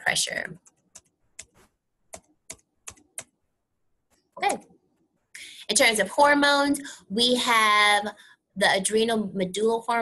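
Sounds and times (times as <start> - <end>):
computer key clicks: 0.6 - 3.4.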